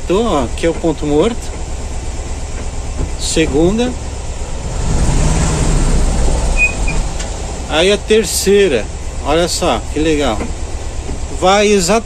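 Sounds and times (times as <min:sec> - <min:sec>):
engine and road noise in cabin: 0:00.0 - 0:12.0
high squeaks: 0:06.4 - 0:07.2.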